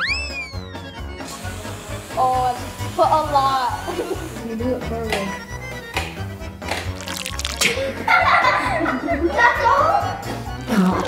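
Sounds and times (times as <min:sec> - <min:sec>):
cartoon slide whistle: 0:00.0 - 0:01.0
background music: 0:00.0 - 0:11.0
aerosol whipped cream hiss: 0:01.2 - 0:04.7.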